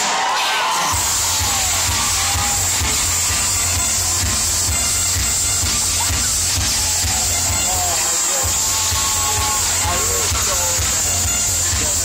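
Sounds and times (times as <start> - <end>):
loud dance music: 0.0 - 12.0
teenagers shouting and cheering: 0.0 - 12.0
pounding bass beat: 0.9 - 12.0.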